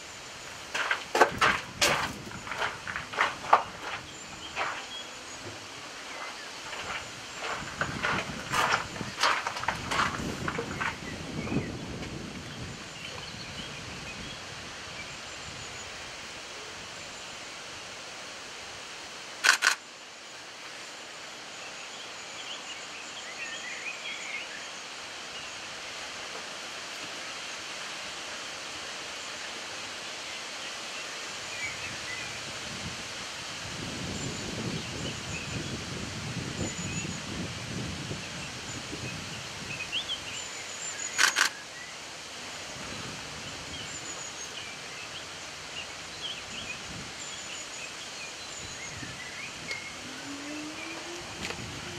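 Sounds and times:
faint distant birdsong: 0.0s - 32.8s, 33.8s - 51.9s
sharp loud click: 19.4s - 19.8s, 41.1s - 41.6s.

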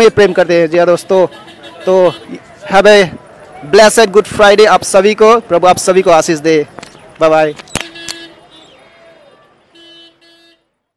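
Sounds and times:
faint street noise: 0.0s - 10.9s
vehicle horn toots: 7.8s - 8.8s, 9.7s - 10.7s.

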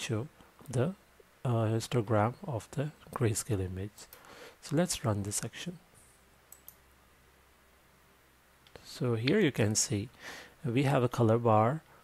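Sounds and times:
faint computer mouse clicks: 6.5s - 6.8s.

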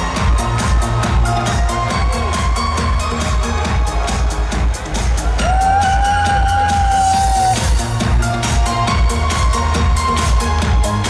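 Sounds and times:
dance music through loudspeakers: 0.0s - 11.0s.

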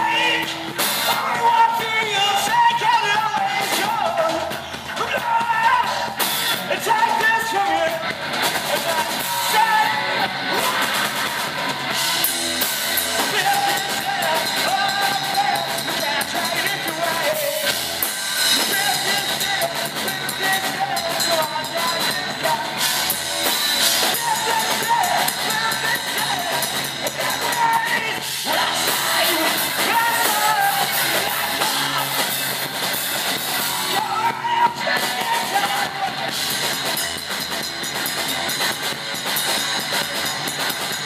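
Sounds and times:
person singing: 0.0s - 11.8s, 13.0s - 17.8s, 18.5s - 36.5s
bass guitar: 0.0s - 41.0s
drum kit: 0.0s - 41.0s
electric guitar: 0.0s - 41.0s.

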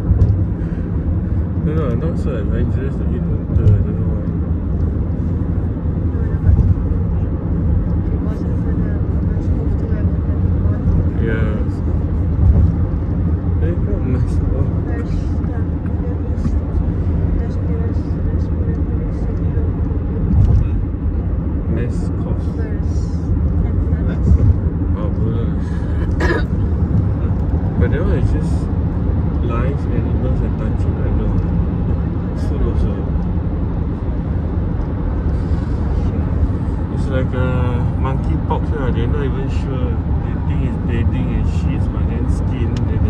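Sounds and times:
road and engine rumble in car: 0.0s - 43.0s.

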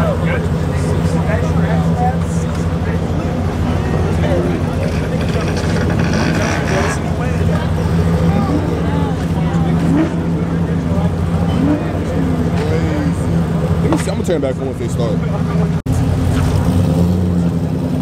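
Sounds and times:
diesel engine running: 0.0s - 18.0s
people calling out: 3.0s - 13.6s.

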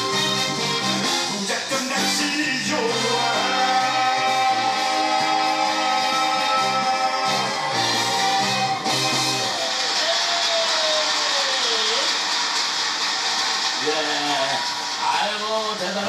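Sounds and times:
live band and singer: 0.0s - 9.8s
crowd cheering and applauding: 2.7s - 16.0s.

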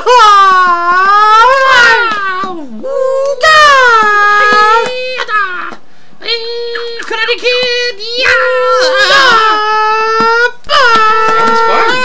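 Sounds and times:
person wailing high-pitched: 0.0s - 12.0s.

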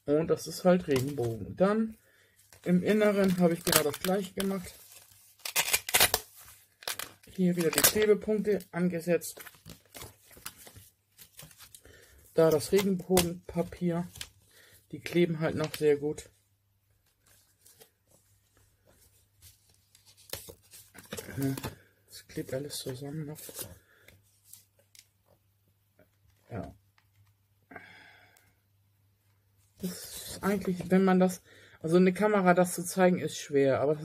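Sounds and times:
paper rustling and crackling: 0.6s - 1.4s, 2.4s - 14.4s, 17.0s - 25.4s.

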